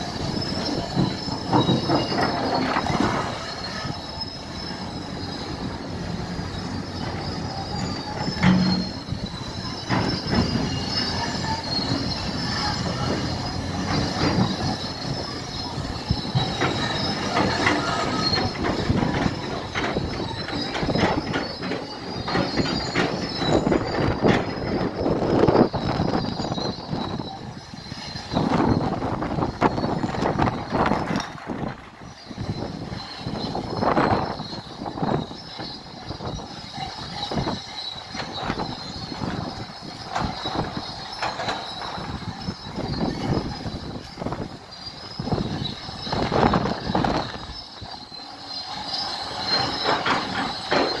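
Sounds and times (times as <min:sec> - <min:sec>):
heavy machinery engine: 0:00.0 - 0:51.0
high metallic squeal: 0:00.0 - 0:51.0.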